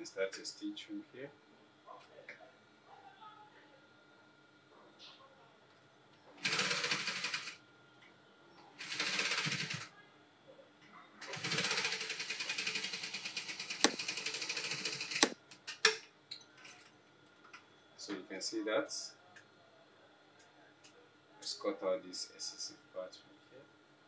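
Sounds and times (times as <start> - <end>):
sewing machine stitching fabric: 13.8 - 15.4.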